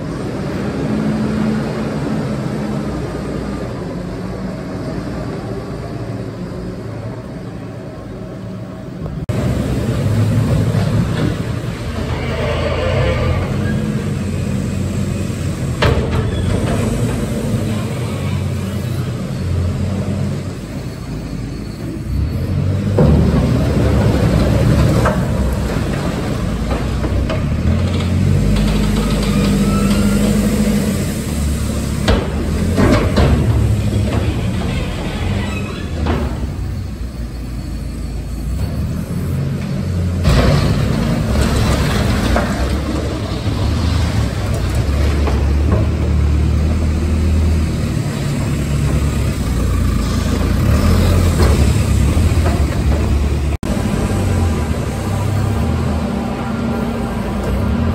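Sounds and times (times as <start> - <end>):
loud deep loader engine: 0.0 - 57.9
tractor engine running: 40.2 - 57.9.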